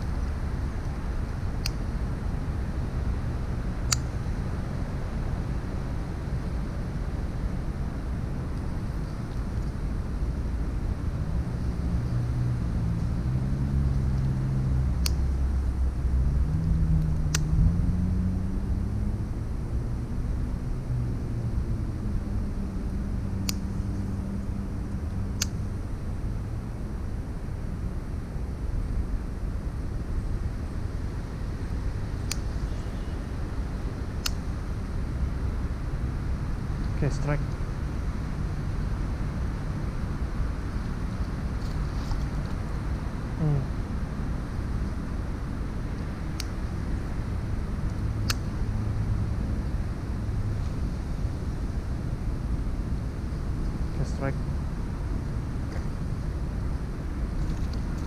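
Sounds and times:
distant traffic rumble: 0:00.0 - 0:58.0
engine drone: 0:00.0 - 0:58.0.

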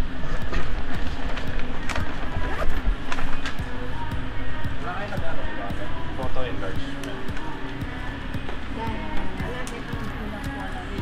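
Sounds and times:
background music: 0:00.0 - 0:11.0
indistinct voices: 0:00.0 - 0:11.0.

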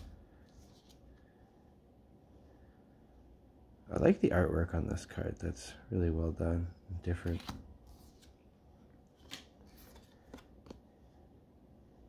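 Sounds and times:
trading cards clicking and sliding: 0:07.1 - 0:08.4.

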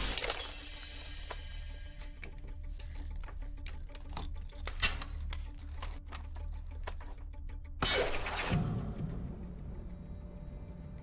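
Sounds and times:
glass pane shattering: 0:00.0 - 0:01.5
orchestral film score: 0:01.3 - 0:11.0.

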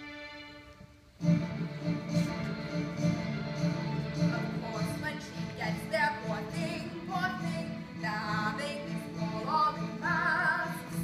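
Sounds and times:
instrumental accompaniment: 0:00.0 - 0:11.0
woman singing with vibrato: 0:04.1 - 0:11.0.

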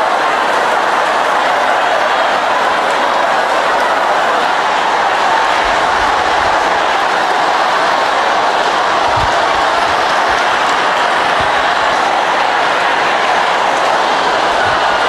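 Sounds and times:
congregation praying aloud: 0:00.0 - 0:15.0.

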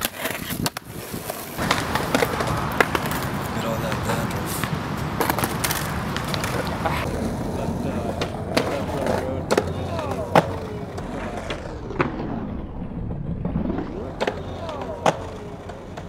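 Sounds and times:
skateboard popping and landing clacks: 0:00.0 - 0:07.1, 0:08.0 - 0:12.2, 0:13.9 - 0:16.0
skateboard scraping concrete ledge: 0:00.0 - 0:12.1
skateboard wheels rolling on concrete: 0:00.0 - 0:16.0.

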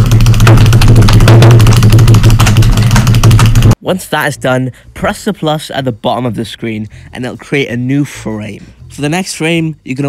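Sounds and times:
dense rapid crackle: 0:00.0 - 0:03.8
low buzz: 0:00.0 - 0:03.8.

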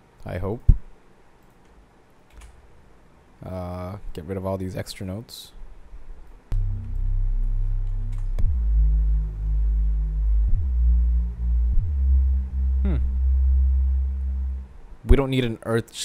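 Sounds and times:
mellow synth bass notes: 0:06.5 - 0:15.2.

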